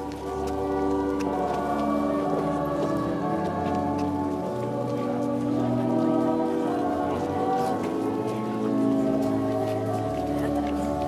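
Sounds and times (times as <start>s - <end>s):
crowd singing a hymn: 0.0s - 11.0s.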